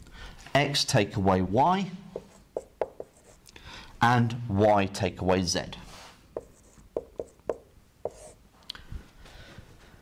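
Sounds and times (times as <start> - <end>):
marker writing on whiteboard: 2.1 - 3.4, 6.3 - 8.4.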